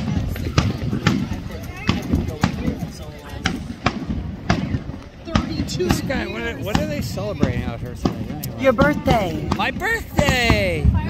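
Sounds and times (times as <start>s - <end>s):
fireworks bursting with sharp bangs: 0.0s - 11.0s.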